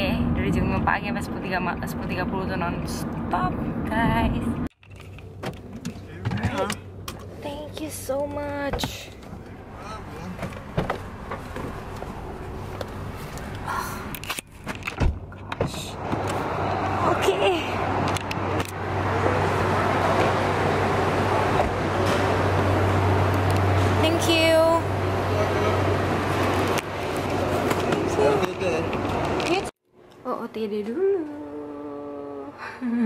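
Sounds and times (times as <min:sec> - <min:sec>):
vehicle engines idling: 0:02.9 - 0:29.7
woman humming: 0:30.9 - 0:33.0.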